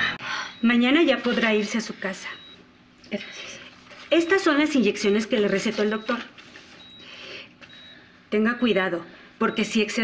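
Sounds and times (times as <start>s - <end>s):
paper rustling: 3.7s - 4.5s.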